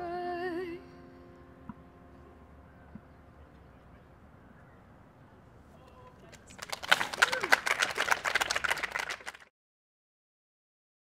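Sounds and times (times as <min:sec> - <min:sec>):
small audience clapping: 0:06.2 - 0:09.5.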